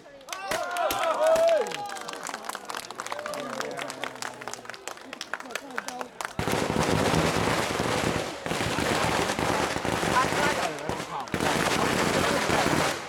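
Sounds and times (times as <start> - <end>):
firecrackers crackling: 6.2 - 13.0.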